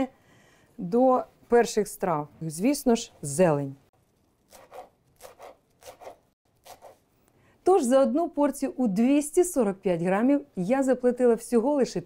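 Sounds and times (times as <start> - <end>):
knife chopping on wooden board: 4.5 - 7.0.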